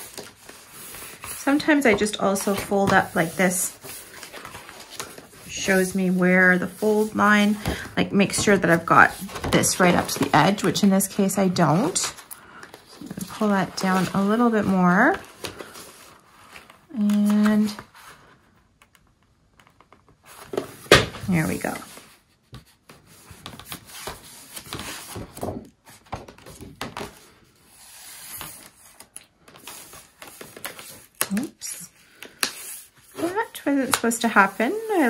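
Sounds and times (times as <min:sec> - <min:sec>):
paper rustling and sliding: 0:00.0 - 0:18.4, 0:20.2 - 0:31.3, 0:32.0 - 0:35.0.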